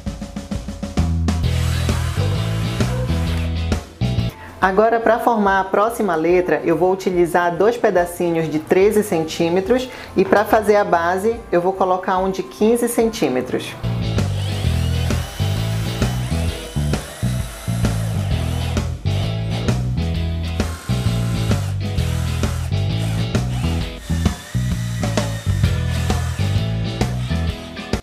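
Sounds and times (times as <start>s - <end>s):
background music with stepping bass: 0.0s - 4.4s, 13.0s - 28.0s
cordless drill driving screws: 1.5s - 3.5s, 14.2s - 19.3s, 20.5s - 27.3s.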